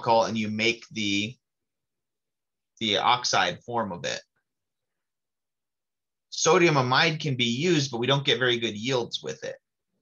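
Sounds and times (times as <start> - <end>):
man speaking: 0.0 - 1.5, 2.8 - 4.4, 6.3 - 9.7.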